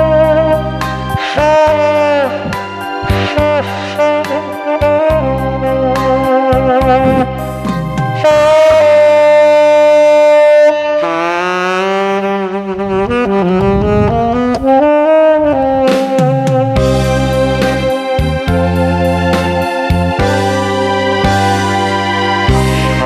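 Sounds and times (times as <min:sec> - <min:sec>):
bass and keyboard backing track: 0:00.0 - 0:23.0
tenor saxophone melody: 0:00.0 - 0:23.0.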